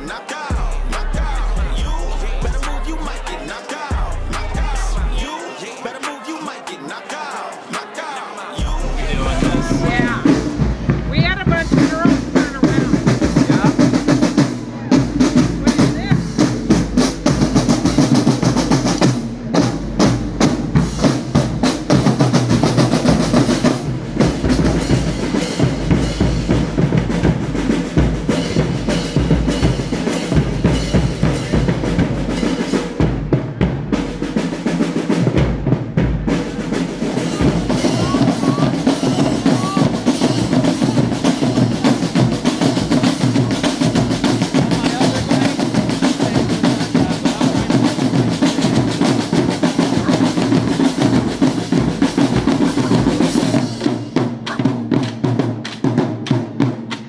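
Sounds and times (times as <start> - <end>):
marching drum line: 0.0 - 57.0.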